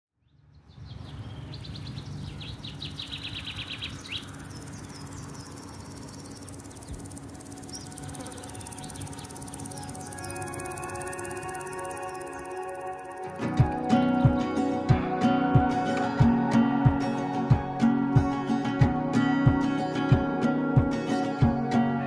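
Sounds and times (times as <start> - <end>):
high bird chirps: 0.2 - 13.9
bird trilling: 1.4 - 14.2.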